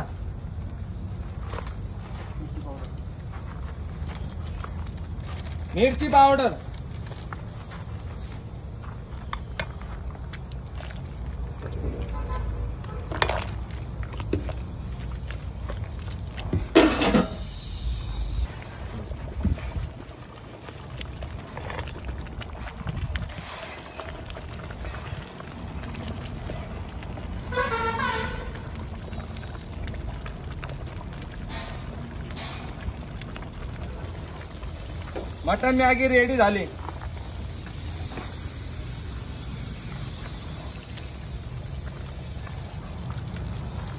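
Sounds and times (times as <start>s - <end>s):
vehicle horn toot: 12.0s - 13.0s, 27.4s - 28.7s.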